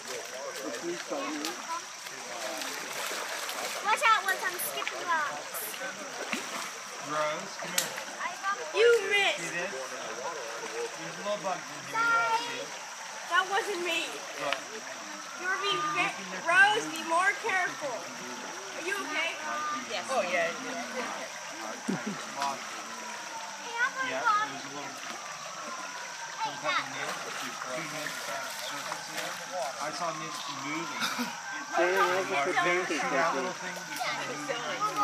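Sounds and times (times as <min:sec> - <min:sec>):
creek water running over stones: 0:00.0 - 0:35.0
feet splashing through water: 0:00.0 - 0:35.0
people talking and calling out: 0:00.0 - 0:35.0.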